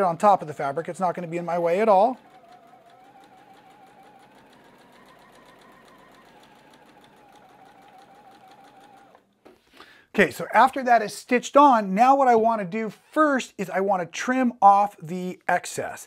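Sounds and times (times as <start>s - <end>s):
sewing machine stitching: 0.0s - 9.5s.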